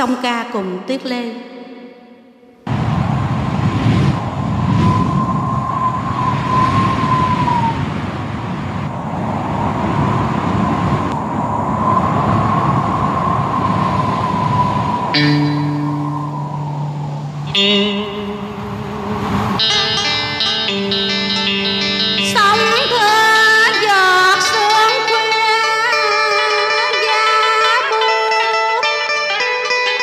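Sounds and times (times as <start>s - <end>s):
rushing wash: 2.7s - 29.2s
wavering high tone: 14.2s - 29.1s
low held notes: 14.8s - 23.8s.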